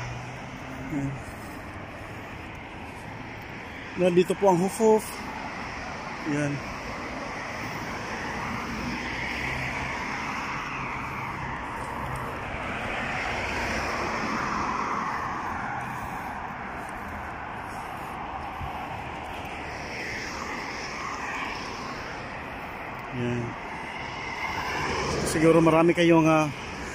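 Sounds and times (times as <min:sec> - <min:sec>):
cars driving past: 0:00.0 - 0:26.9.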